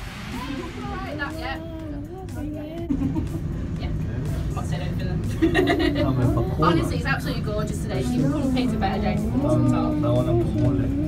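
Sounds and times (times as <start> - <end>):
faint voices: 5.8 - 11.0.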